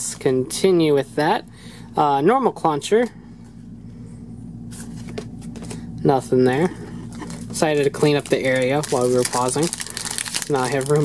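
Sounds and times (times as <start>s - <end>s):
steady low hum: 0.0s - 11.0s
papery rustle: 7.1s - 11.0s.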